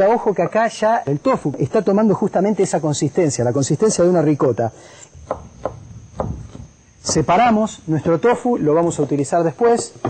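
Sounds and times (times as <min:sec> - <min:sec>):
knife chopping on wooden board: 0:05.2 - 0:07.3.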